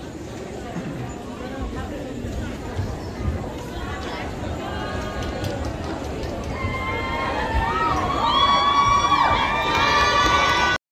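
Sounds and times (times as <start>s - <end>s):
audience cheering and shouting: 6.5s - 10.8s.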